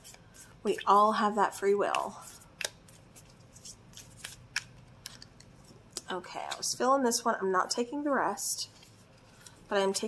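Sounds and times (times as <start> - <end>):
card edges clicking and snapping: 3.9 - 5.5.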